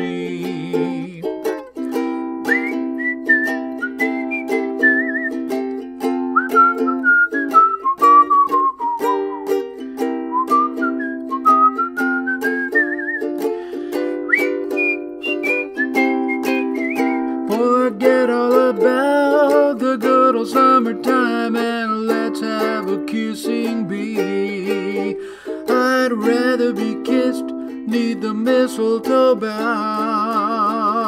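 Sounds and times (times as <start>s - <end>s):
ukulele strumming: 0.0s - 31.0s
man whistling a melody: 0.1s - 31.0s.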